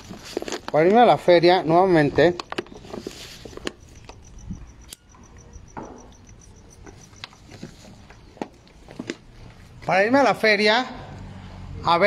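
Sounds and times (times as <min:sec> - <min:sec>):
cricket chirping: 0:02.4 - 0:09.8.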